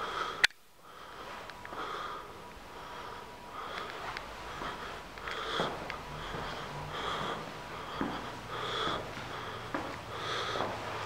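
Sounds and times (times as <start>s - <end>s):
breathing close to microphone: 0.0s - 11.0s.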